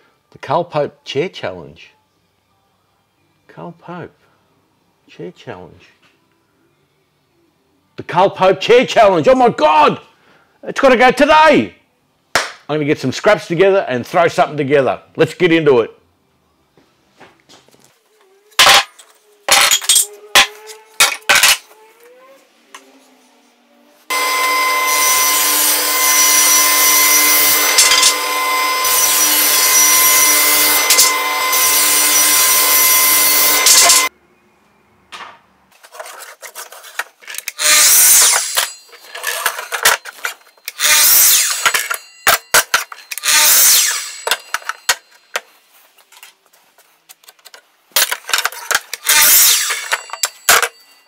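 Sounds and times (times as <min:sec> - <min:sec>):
table saw cutting a board: 0:24.1 - 0:34.1, 0:37.5 - 0:39.9, 0:40.7 - 0:45.1, 0:49.0 - 0:50.7
short bursts of tool noise: 0:29.0 - 0:34.1, 0:37.4 - 0:44.9, 0:48.6 - 0:50.7.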